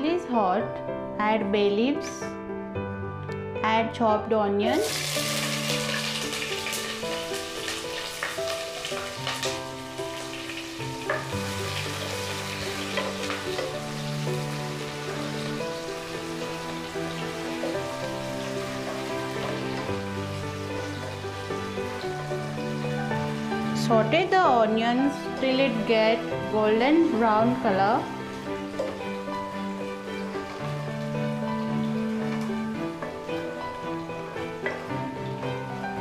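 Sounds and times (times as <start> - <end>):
soft background music: 0.0 - 36.0
onions sizzling in hot oil: 4.7 - 36.0.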